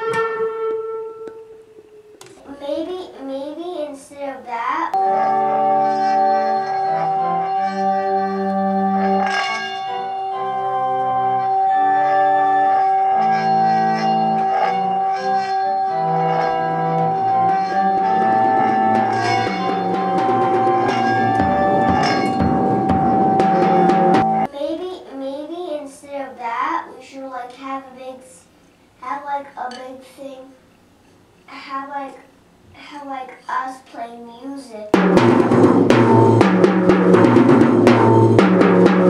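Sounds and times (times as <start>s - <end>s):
low held notes: 5.0s - 24.5s
singing bowl ringing: 5.0s - 24.5s.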